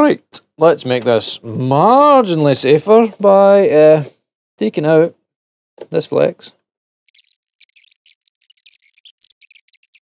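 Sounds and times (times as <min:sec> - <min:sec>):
hands scratching and clicking on wiring: 0:07.1 - 0:10.0.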